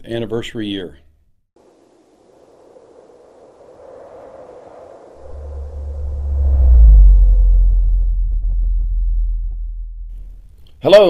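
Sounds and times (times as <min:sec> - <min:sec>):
airy whoosh: 0:03.5 - 0:10.4
deep bass rumble: 0:05.2 - 0:10.6
short falling low tone: 0:05.3 - 0:10.4.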